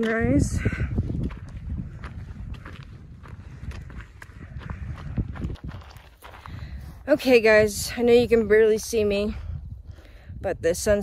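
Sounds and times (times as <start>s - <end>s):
footsteps on dirt trail: 0.0s - 9.9s
low rumble on microphone: 0.3s - 7.1s.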